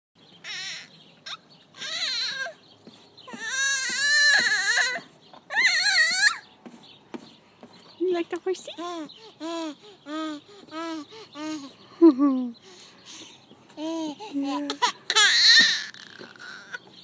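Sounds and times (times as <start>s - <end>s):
baby squealing: 0.4s - 2.6s, 3.3s - 6.5s, 8.8s - 11.8s, 13.8s - 16.9s.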